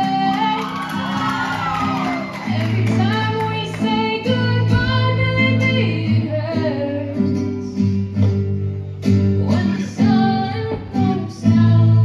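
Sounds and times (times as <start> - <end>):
woman singing slow melody: 0.0 - 8.1, 9.3 - 12.0.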